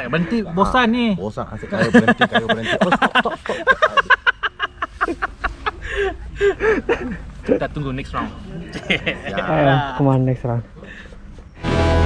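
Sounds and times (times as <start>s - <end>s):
man laughing hard: 1.7s - 7.3s.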